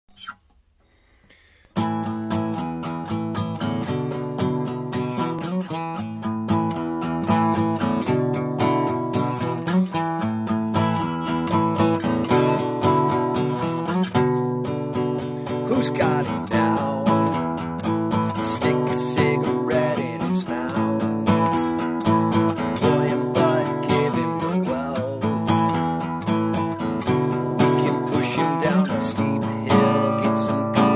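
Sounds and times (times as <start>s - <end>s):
acoustic guitar strumming: 0.1s - 0.5s, 1.7s - 30.9s
man singing: 15.3s - 30.9s.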